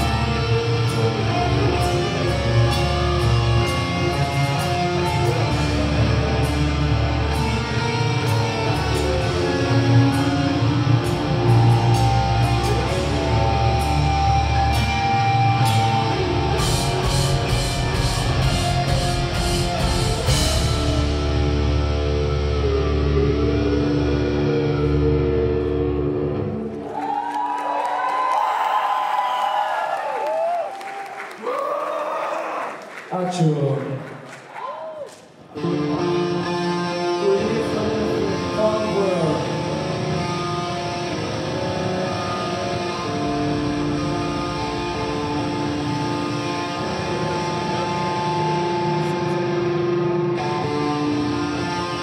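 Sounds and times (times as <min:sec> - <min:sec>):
metal band playing: 0:00.0 - 0:26.6, 0:35.6 - 0:52.0
crowd cheering and applauding: 0:26.4 - 0:35.6.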